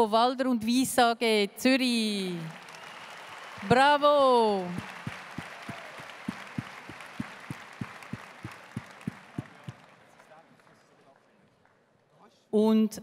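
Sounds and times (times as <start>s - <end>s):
large audience applauding: 2.5s - 11.2s.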